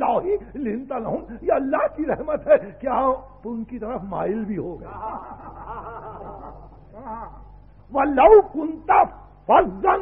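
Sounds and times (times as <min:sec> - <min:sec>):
tape recording hum: 0:00.0 - 0:10.0.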